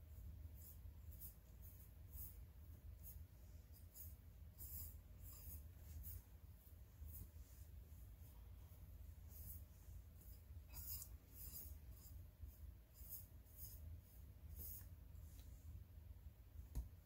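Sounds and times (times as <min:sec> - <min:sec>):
paintbrush swishing: 0:00.0 - 0:15.8.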